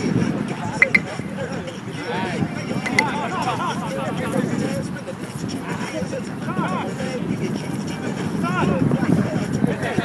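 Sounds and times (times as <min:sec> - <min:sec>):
wind on microphone: 0:00.0 - 0:10.0
people chattering: 0:00.5 - 0:08.0.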